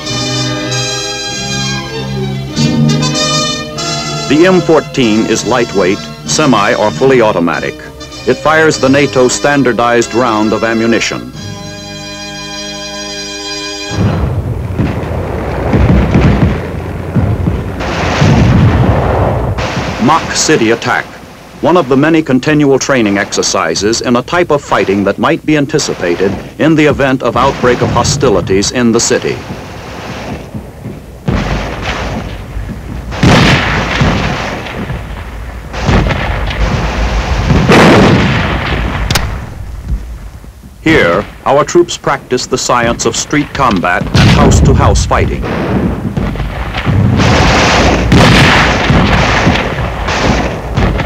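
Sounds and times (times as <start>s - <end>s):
gunfire and explosions booming: 0.0s - 11.4s, 13.8s - 51.0s
held music chord: 0.0s - 14.1s
continuous low rumble: 13.9s - 51.0s
sharp crack: 13.9s - 51.0s.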